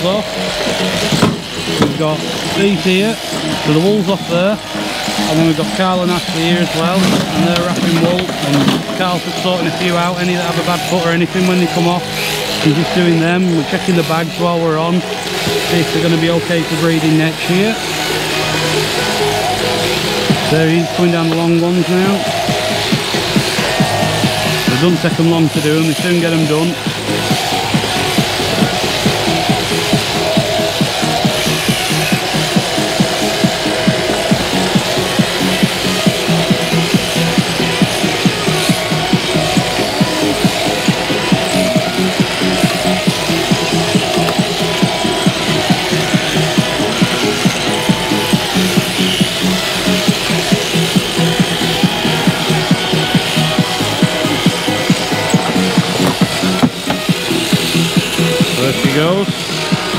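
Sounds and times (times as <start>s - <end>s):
electric shears buzzing: 0.0s - 59.9s.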